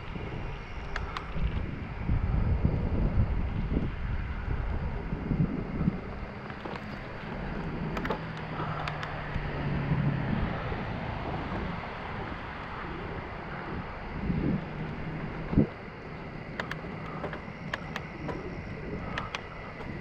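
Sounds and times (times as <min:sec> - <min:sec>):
faint low hum: 0:00.0 - 0:20.0
wind buffeting microphone: 0:00.0 - 0:20.0
light clicks: 0:00.8 - 0:01.7, 0:06.4 - 0:09.5, 0:16.5 - 0:20.0.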